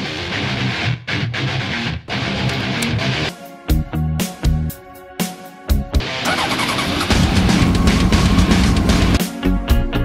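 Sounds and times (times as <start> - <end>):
background music: 0.0 - 10.0
motorcycle engine starting and running: 6.0 - 9.2.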